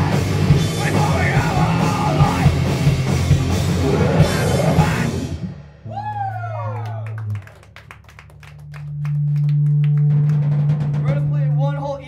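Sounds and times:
falling whoop: 0:05.8 - 0:07.6
audience cheering: 0:05.8 - 0:10.6
low amplifier hum: 0:05.9 - 0:12.0
scattered hand claps: 0:06.8 - 0:10.8.

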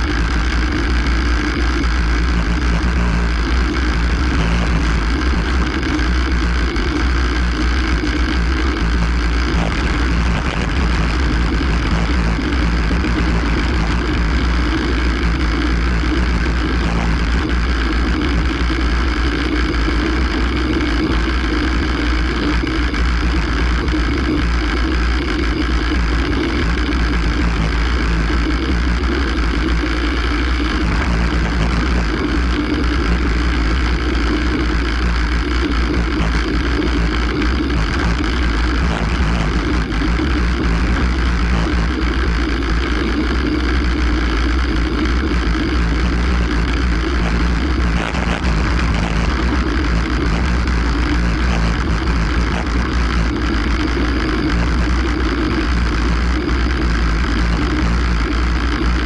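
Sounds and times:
deep rumble from rough road: 0:00.0 - 0:59.0.

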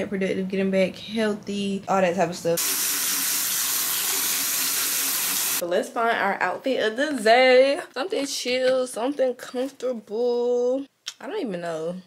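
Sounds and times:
water running from tap: 0:02.6 - 0:05.6.

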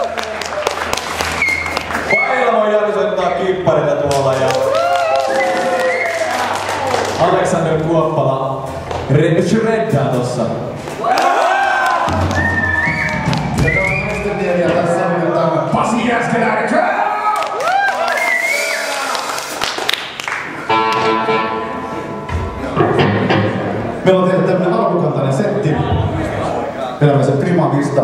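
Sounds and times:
audience applause: 0:00.0 - 0:02.2, 0:04.1 - 0:07.4, 0:11.1 - 0:14.3, 0:17.4 - 0:20.8
live rock band playing: 0:20.6 - 0:24.6
low bass note: 0:20.7 - 0:24.6.

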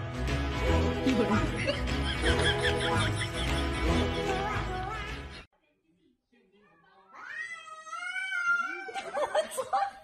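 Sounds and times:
cat yowling: 0:07.1 - 0:09.0.

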